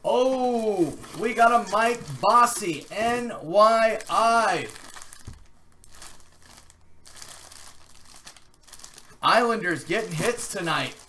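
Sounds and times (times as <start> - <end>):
plastic bag crinkling: 0.1 - 11.0.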